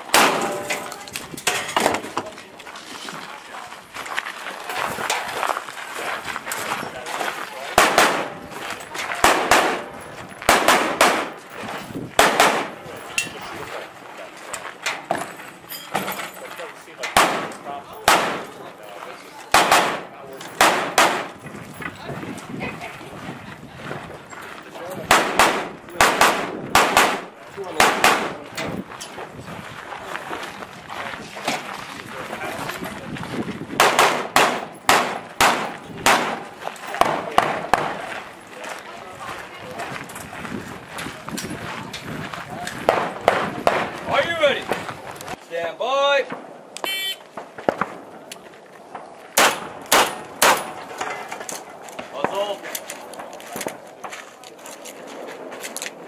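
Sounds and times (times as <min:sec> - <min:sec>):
gunshots: 0:00.0 - 0:00.9, 0:07.7 - 0:08.5, 0:09.2 - 0:11.4, 0:12.2 - 0:12.9, 0:17.1 - 0:18.6, 0:19.5 - 0:21.4, 0:25.0 - 0:28.5, 0:33.8 - 0:38.1, 0:42.8 - 0:44.0, 0:49.4 - 0:50.9.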